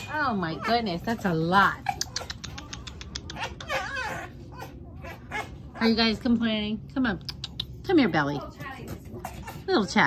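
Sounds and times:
fox chattering clicks: 0:01.8 - 0:03.8, 0:07.2 - 0:07.9.

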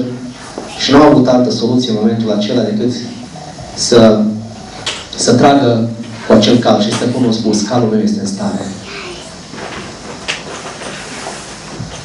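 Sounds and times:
microphone hiss: 0:00.0 - 0:12.0.

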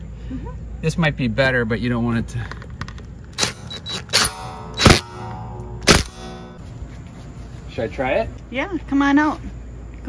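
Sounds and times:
metallic ringing tone: 0:03.5 - 0:06.7.

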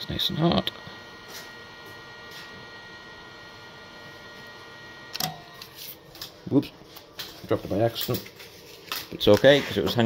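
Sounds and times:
induction heater humming: 0:00.0 - 0:10.0.

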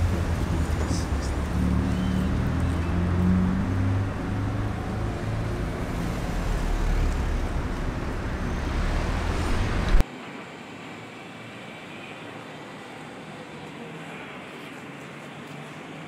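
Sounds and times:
vehicle engine rumbling: 0:00.0 - 0:10.0
street traffic: 0:00.0 - 0:16.0
steady background hiss: 0:07.4 - 0:16.0.

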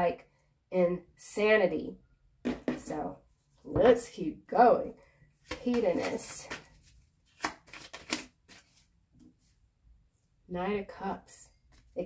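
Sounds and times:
cards being shuffled: 0:05.4 - 0:08.9.

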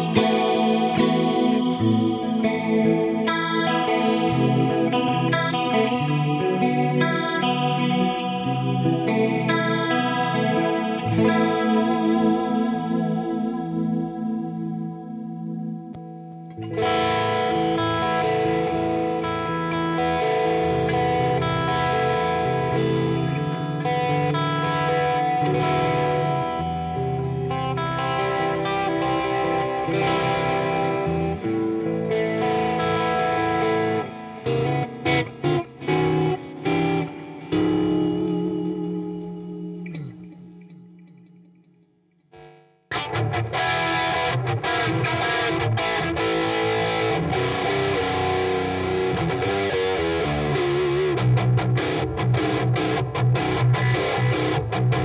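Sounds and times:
electric guitar playing: 0:00.0 - 0:55.0.

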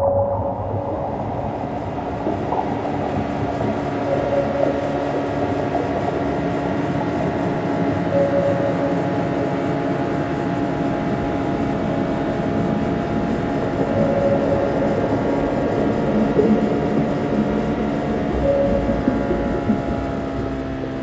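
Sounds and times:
boat engine droning: 0:00.0 - 0:21.0.

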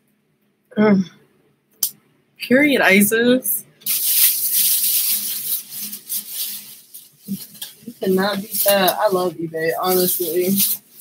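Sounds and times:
bag and clothes rustling: 0:03.8 - 0:11.0.

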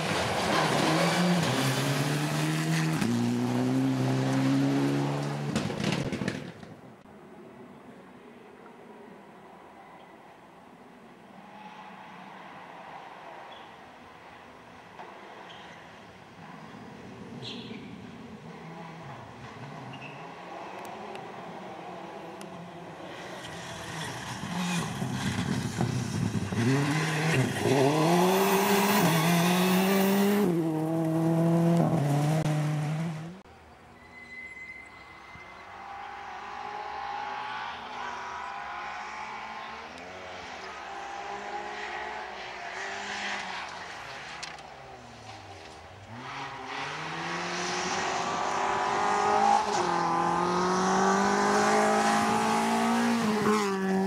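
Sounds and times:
rally car engine accelerating: 0:00.0 - 0:06.4, 0:23.0 - 0:33.4, 0:35.8 - 0:54.0
distant rally car engine: 0:00.0 - 0:06.8, 0:14.4 - 0:33.5, 0:35.2 - 0:54.0.

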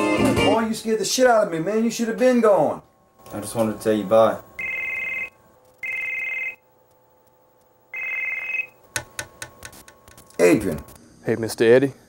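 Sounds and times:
telephone ringing: 0:03.3 - 0:09.1.

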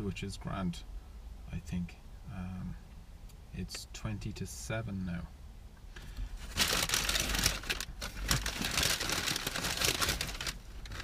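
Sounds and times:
paper bag crinkling and rustling: 0:06.4 - 0:11.0.

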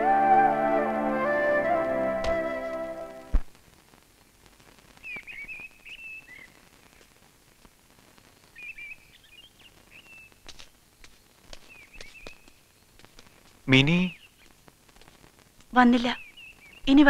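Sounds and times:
faint outdoor ambience: 0:00.0 - 0:17.0
birds chirping: 0:11.6 - 0:13.0, 0:13.7 - 0:14.6, 0:15.8 - 0:17.0.

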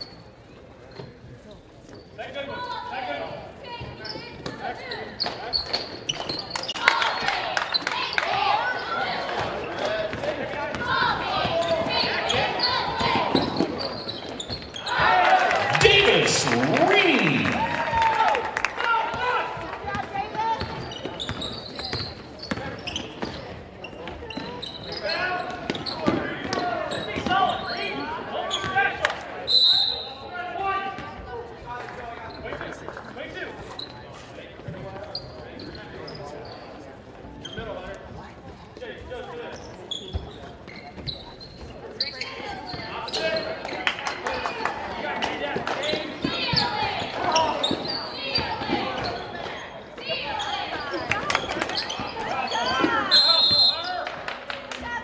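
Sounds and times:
players and spectators talking: 0:00.0 - 0:55.0.

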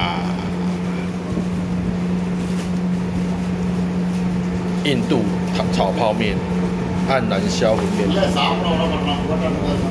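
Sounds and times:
machine hum: 0:00.0 - 0:09.9.

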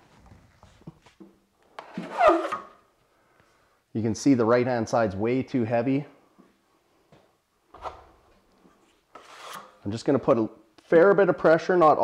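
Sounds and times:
trowel scraping with squeal: 0:01.9 - 0:02.8, 0:09.1 - 0:09.8.

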